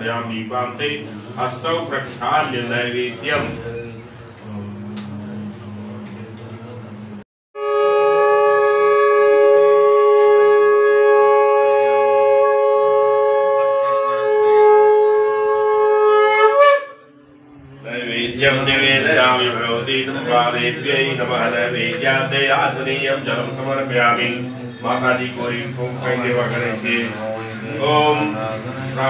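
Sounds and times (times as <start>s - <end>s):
conch shell blown: 7.6s - 17.9s.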